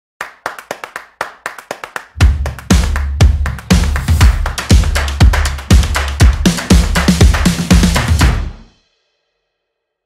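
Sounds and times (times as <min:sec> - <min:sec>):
hand claps in rhythm: 0:00.2 - 0:08.5.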